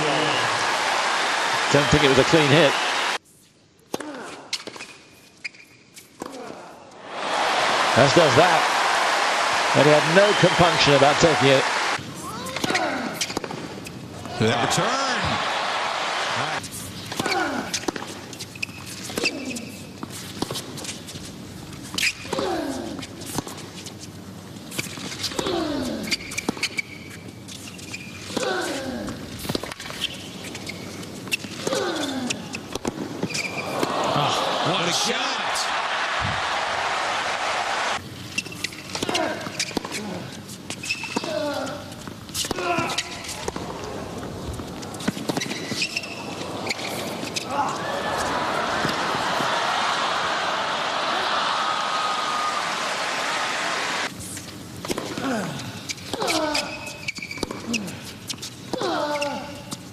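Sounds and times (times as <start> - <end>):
crowd applause: 0.0 - 3.2, 7.0 - 12.0, 14.4 - 16.6, 33.6 - 38.0, 46.4 - 54.1.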